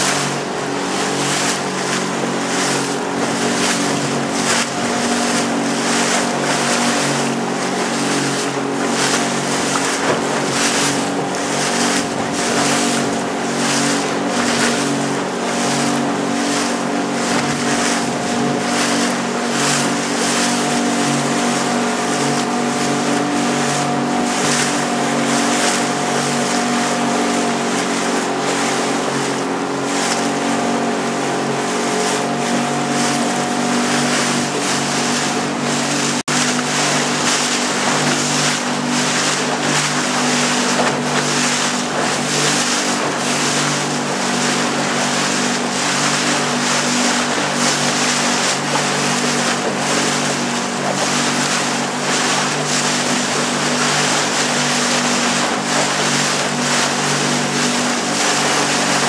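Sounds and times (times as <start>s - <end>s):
motorboat engine running: 0.0s - 59.0s
water splashing along hull: 0.0s - 59.0s.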